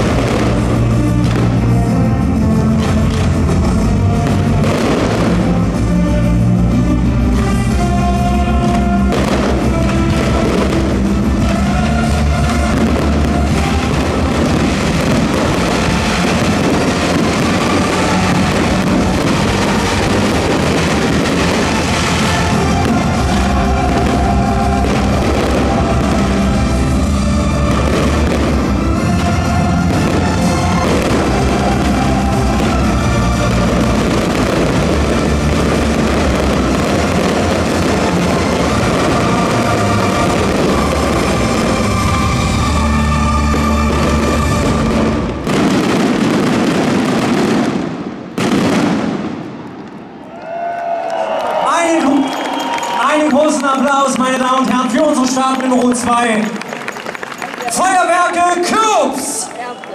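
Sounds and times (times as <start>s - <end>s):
loud music: 0.0s - 49.6s
fireworks bursting and crackling: 0.0s - 59.9s.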